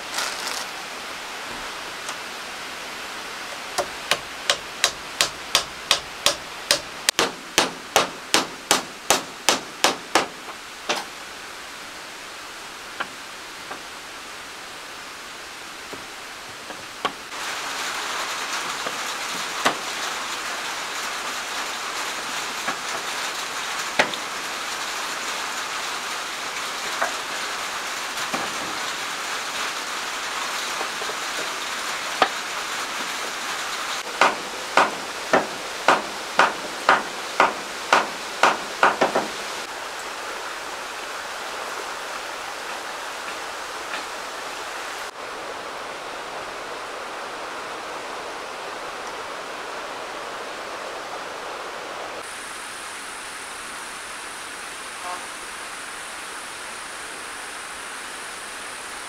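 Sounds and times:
steady hiss: 0.0s - 59.0s
hammer striking nails into wood: 3.8s - 11.1s, 34.2s - 39.3s.

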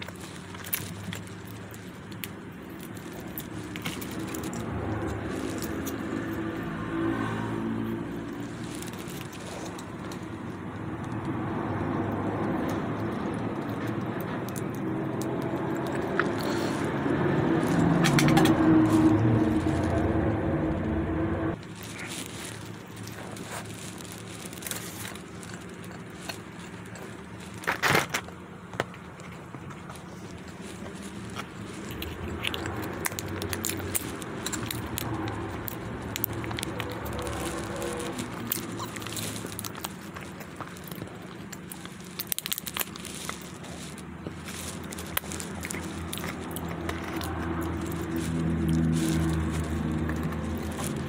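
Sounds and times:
packaging clicks and crinkles: 0.0s - 20.4s, 21.6s - 51.0s
hum with shifting low tones: 0.8s - 27.2s.

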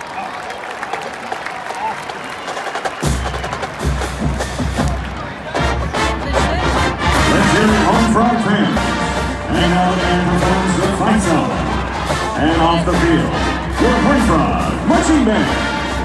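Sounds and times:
crowd cheering: 0.0s - 16.0s
stadium crowd noise: 0.0s - 16.0s
marching band drums and music: 2.0s - 16.0s.

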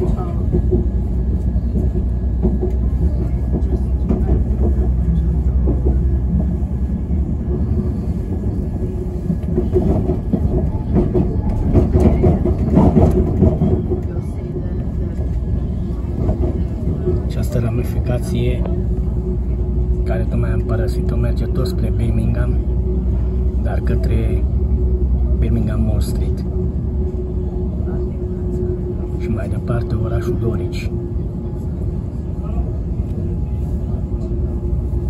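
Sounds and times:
train wheels rumbling on track: 0.0s - 35.0s.

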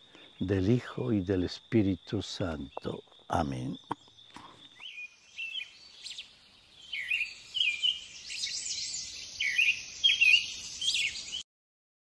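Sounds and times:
birds chirping: 0.0s - 11.4s
steady high hiss: 0.0s - 11.4s.

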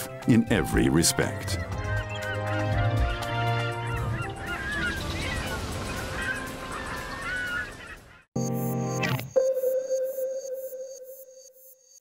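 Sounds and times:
soft background music: 0.0s - 6.8s
water birds calling: 0.9s - 8.3s
held electronic tones: 8.4s - 12.0s.

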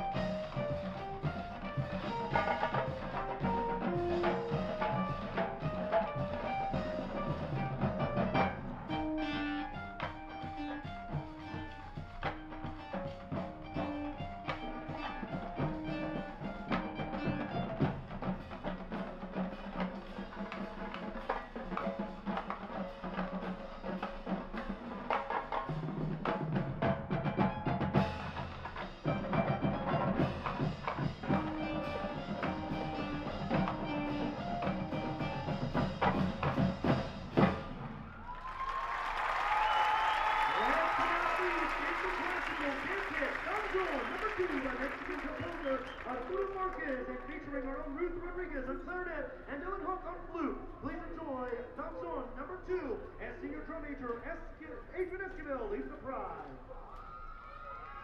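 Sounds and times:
marching band playing: 0.0s - 48.3s
drumline: 0.0s - 56.7s.

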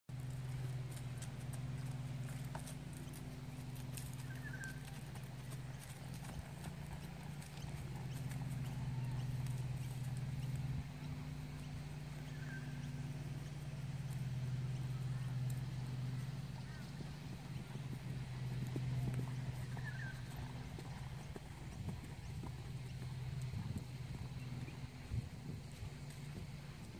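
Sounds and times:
horse hoofbeats on grass: 0.1s - 26.9s
steady low hum: 0.1s - 26.9s
bird chirping: 1.8s - 25.0s.

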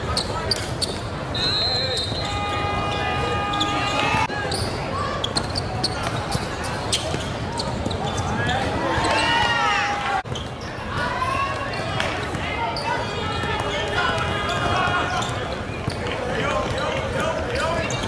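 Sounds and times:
sneakers squeaking: 0.0s - 18.0s
voices of players and spectators: 0.0s - 18.0s.

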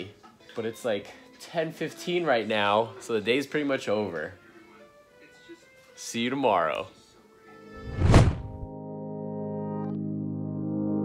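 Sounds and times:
transition whoosh: 7.8s - 8.7s
deep thud: 7.9s - 8.6s
synthesizer chords background music: 8.6s - 11.0s.

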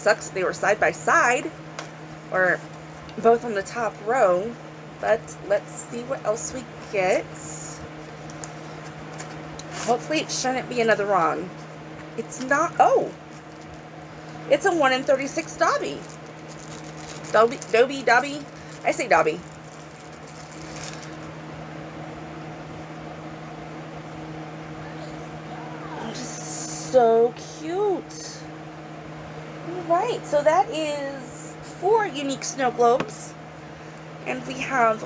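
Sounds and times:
steady low hum: 0.0s - 35.0s
plastic wrapping crinkling: 13.2s - 13.8s, 15.7s - 21.4s.

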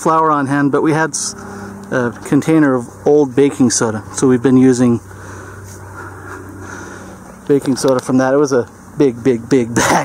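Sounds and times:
faint low hum: 0.0s - 10.0s
steady low rumble: 0.0s - 10.0s.

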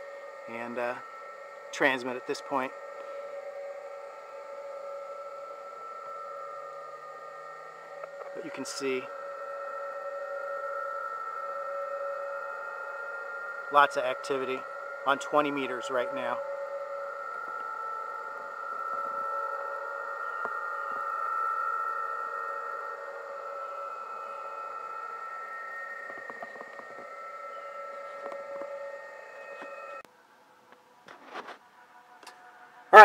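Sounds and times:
radio band hiss: 0.0s - 1.0s, 1.7s - 3.7s, 7.9s - 17.7s
warbling data tones: 0.0s - 30.1s.

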